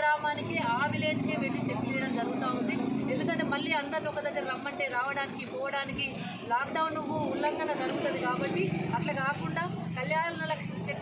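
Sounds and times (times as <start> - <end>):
vehicle engine humming: 0.0 - 11.0
woman speaking: 0.0 - 11.0.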